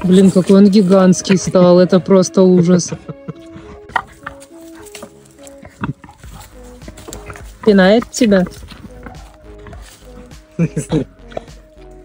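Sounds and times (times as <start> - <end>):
young wild boar grunting: 3.4 - 11.8.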